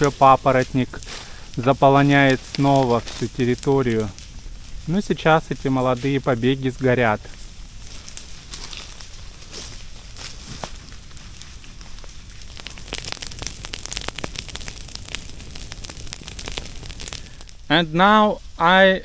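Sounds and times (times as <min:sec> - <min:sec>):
grass fire crackling: 0:00.0 - 0:19.0.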